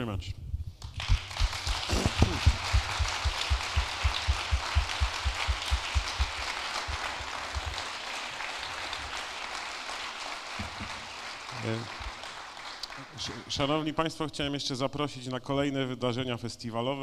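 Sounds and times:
close claps as heavy thumps: 0.8 - 12.9
audience applause: 0.8 - 13.6.

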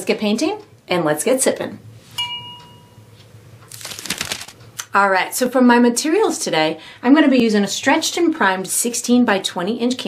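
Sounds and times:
bright bell-like ding: 2.2 - 3.1.

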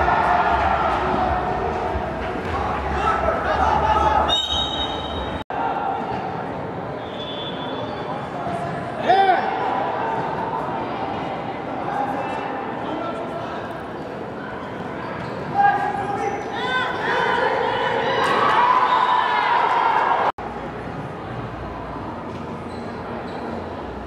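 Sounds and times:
people yelling: 0.0 - 6.3, 15.6 - 20.3
background chatter: 5.2 - 18.8.

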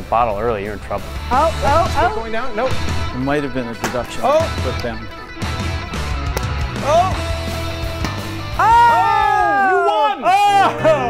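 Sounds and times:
person whooping and cheering: 6.8 - 7.2, 8.6 - 11.0.

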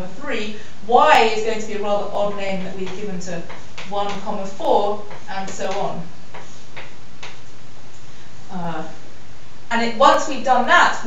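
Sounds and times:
chalk tapping and scraping on blackboard: 2.6 - 7.4.

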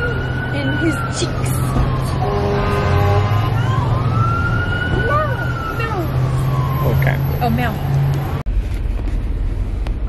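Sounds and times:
siren wailing: 0.0 - 8.4.

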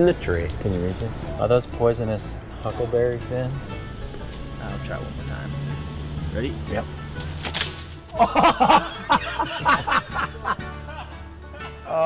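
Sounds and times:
background music: 0.0 - 12.0
men laughing: 8.1 - 12.0.

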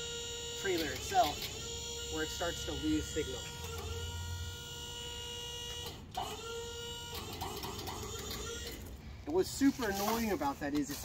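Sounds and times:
hydraulic pump whine: 0.0 - 10.2.

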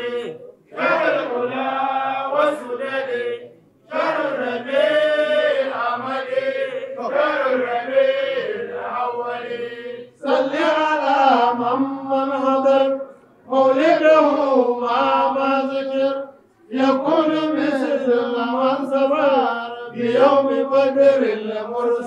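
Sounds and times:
man chanting unaccompanied: 0.0 - 22.0.

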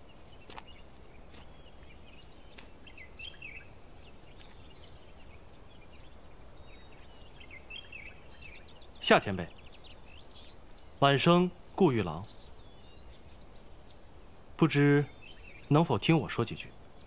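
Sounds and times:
bird chirps: 0.0 - 17.0
forest ambience rumble: 0.0 - 17.0.

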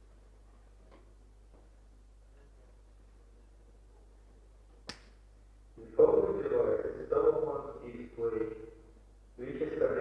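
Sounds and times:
low steady hum: 0.0 - 10.0
man speaking: 5.8 - 8.8, 9.4 - 10.0.

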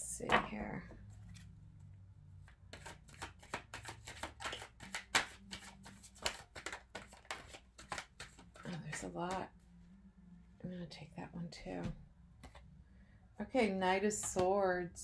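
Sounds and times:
cards being shuffled: 2.4 - 9.5, 12.4 - 12.7.

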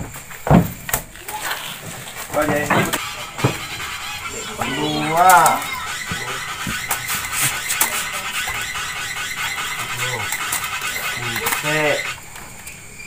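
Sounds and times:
high-pitched hiss: 0.0 - 13.0
brief voices: 1.2 - 12.3.

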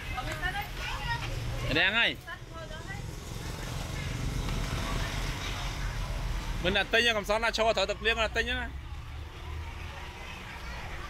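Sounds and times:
faint chatter of voices: 2.4 - 11.0.

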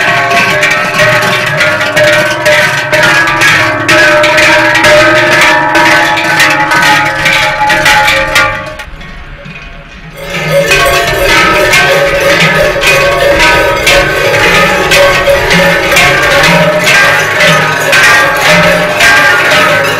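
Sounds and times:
cowbells clanging: 0.0 - 19.9.

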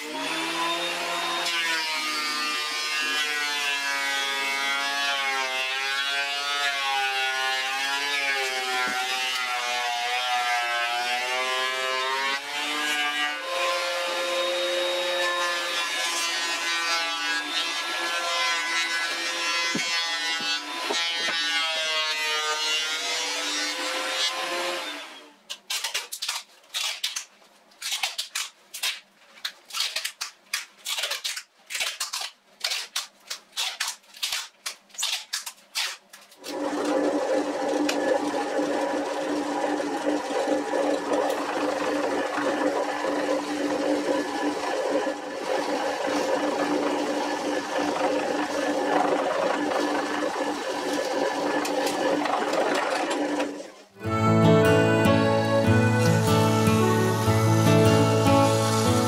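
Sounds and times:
thickness planer running: 36.4 - 59.0
drill press drilling wood: 36.5 - 53.7, 55.8 - 59.0.

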